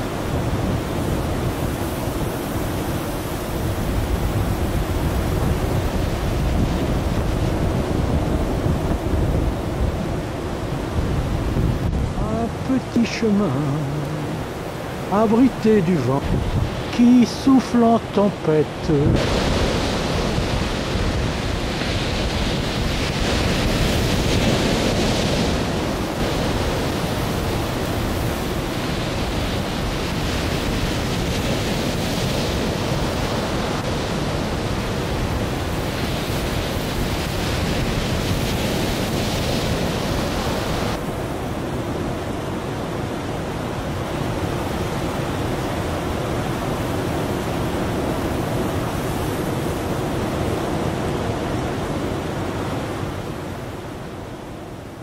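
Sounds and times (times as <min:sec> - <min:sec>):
strong wind buffeting microphone: 0:00.0 - 0:17.6, 0:18.8 - 0:55.0
waves breaking: 0:00.0 - 0:55.0.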